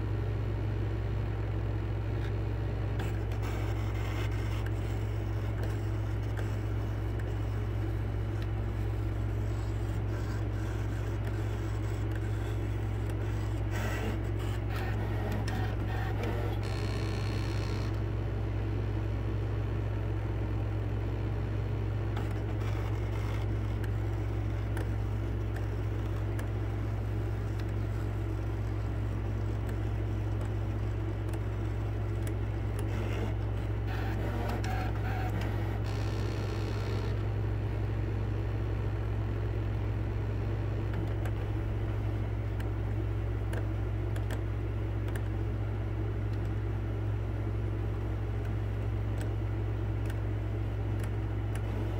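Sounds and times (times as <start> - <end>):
cutting machine motors whirring: 3.0 - 18.0, 22.1 - 37.3, 47.8 - 51.9.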